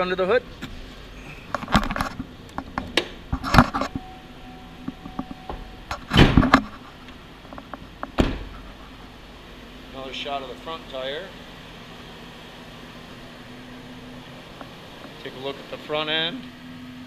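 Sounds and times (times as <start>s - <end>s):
truck door shutting: 0.6s - 9.1s
rustling and knocks in truck cab: 4.9s - 9.1s.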